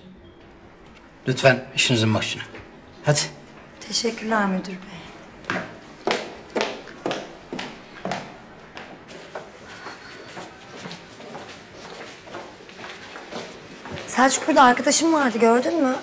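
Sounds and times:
footsteps on tiled floor: 0:03.5 - 0:15.9.

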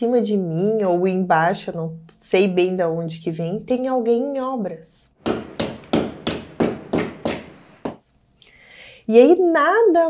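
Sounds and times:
hammer striking a wall: 0:05.2 - 0:08.0.

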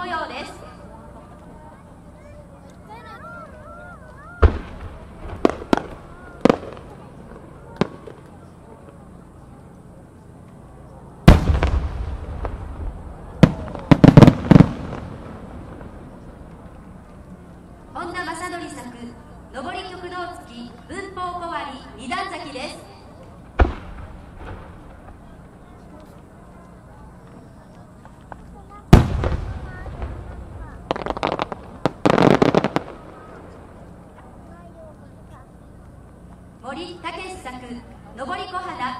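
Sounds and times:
firework crackling: 0:01.4 - 0:09.6, 0:11.1 - 0:19.8, 0:23.2 - 0:38.4
sharp crack: 0:04.4 - 0:07.0, 0:11.3 - 0:12.8, 0:23.5 - 0:25.2, 0:28.2 - 0:33.6
firework shell bang: 0:11.3 - 0:12.8
loud rumbling boom: 0:11.3 - 0:16.3, 0:28.9 - 0:33.7
firework shells bursting: 0:28.0 - 0:34.0.

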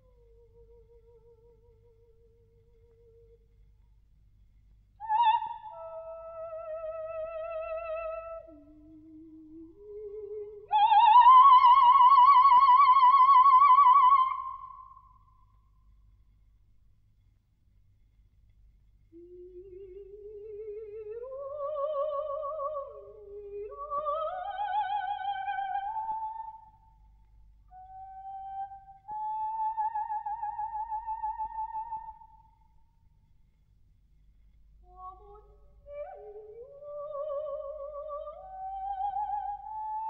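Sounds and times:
faint low hum: 0:00.0 - 0:40.0.

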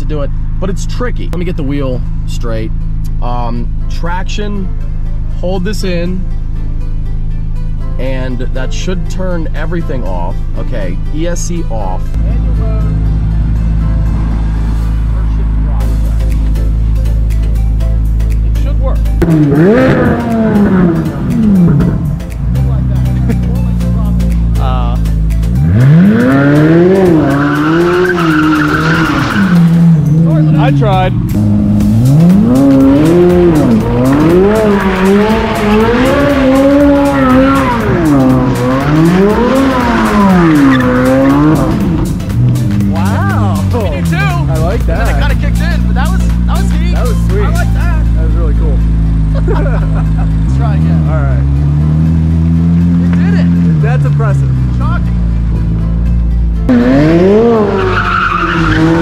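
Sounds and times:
car engine revving: 0:11.4 - 0:59.0
tyres squealing: 0:26.1 - 0:30.3, 0:57.2 - 0:59.0.

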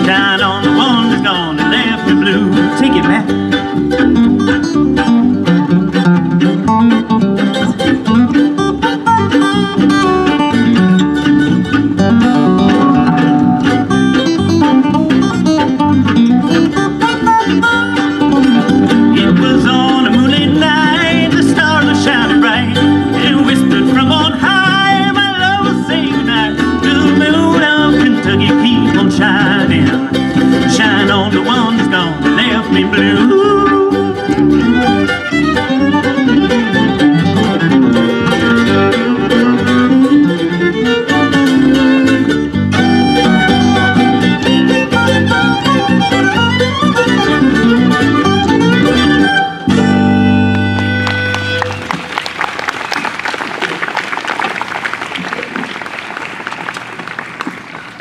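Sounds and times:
fiddle: 0:00.0 - 0:52.3
live band playing: 0:00.0 - 0:58.0.

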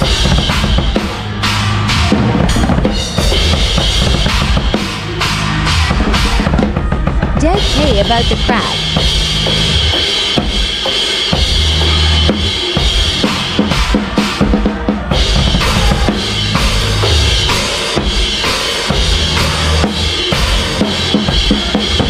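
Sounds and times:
drum kit played hard: 0:00.0 - 0:22.0
sustained low band notes: 0:01.3 - 0:09.9.

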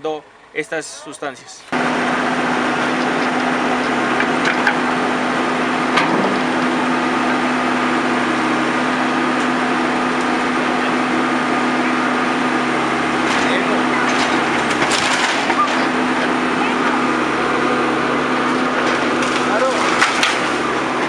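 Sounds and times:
diesel engine running: 0:00.0 - 0:21.0
boards cracking and splintering: 0:13.2 - 0:16.3, 0:18.5 - 0:21.0.

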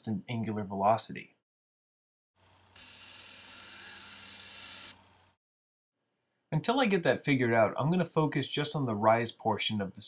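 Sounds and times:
robot motors whirring: 0:02.8 - 0:05.0.

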